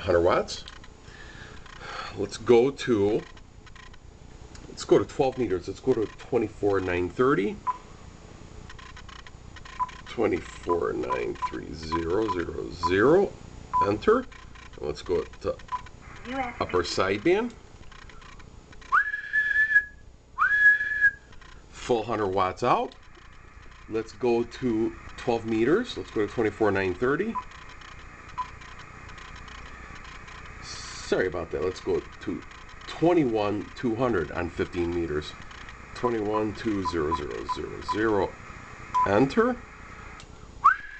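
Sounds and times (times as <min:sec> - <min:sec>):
low steady hum: 0:00.0 - 0:40.9
key-press beeps: 0:03.2 - 0:04.0, 0:08.7 - 0:10.1, 0:11.0 - 0:13.1, 0:15.6 - 0:15.9, 0:27.3 - 0:30.4, 0:36.7 - 0:38.2.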